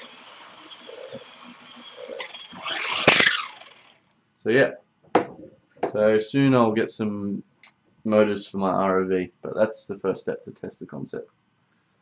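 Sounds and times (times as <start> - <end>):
electric motor whining and revving: 0.0 - 4.0.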